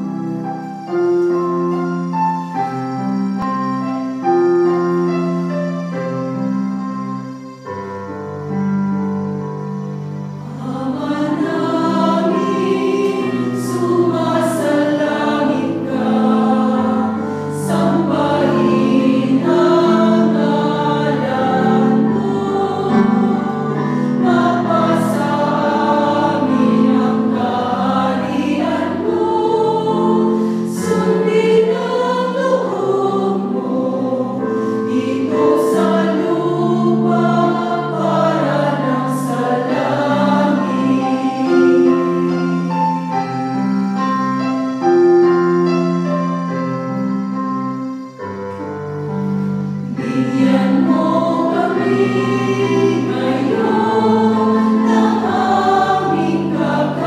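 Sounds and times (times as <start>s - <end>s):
women singing a hymn: 10.4s - 43.0s, 49.9s - 57.0s.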